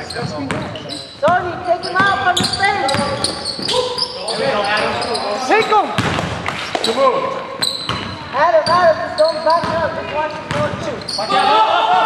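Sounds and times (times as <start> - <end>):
players shouting: 11.2 - 12.0.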